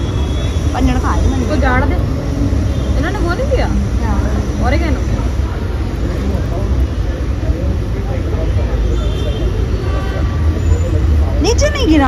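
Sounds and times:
faint voices: 0.0s - 12.0s
traffic rumble: 0.0s - 12.0s.

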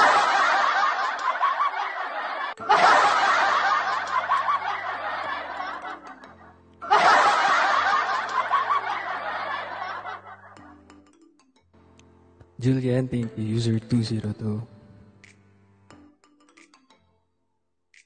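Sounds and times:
crowd laughing and cheering: 0.0s - 10.7s.

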